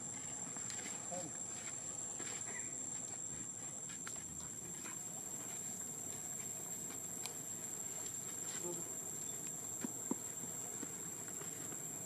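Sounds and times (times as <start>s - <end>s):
insect chorus drone: 0.0s - 12.0s.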